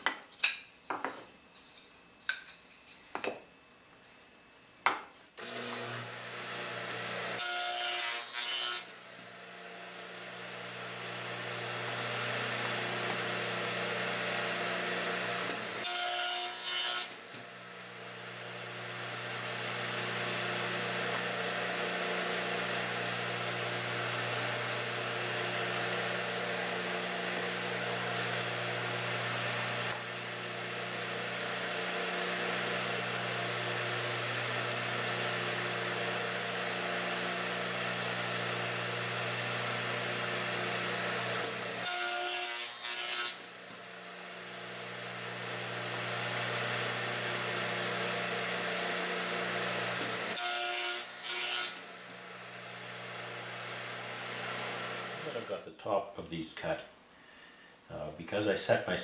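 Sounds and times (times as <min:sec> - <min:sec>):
saw blade cutting wood: 0:05.4 - 0:09.3, 0:10.1 - 0:55.6
saw motor humming: 0:05.4 - 0:55.6.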